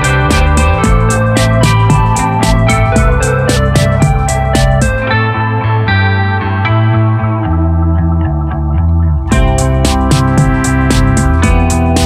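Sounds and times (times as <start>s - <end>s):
bass guitar: 0.0s - 12.0s
electric guitar through effects: 0.0s - 12.0s.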